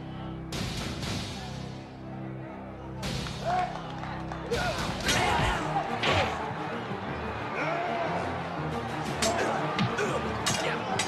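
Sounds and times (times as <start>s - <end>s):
background music: 0.0s - 11.0s
crowd shouting and yelling: 2.2s - 11.0s.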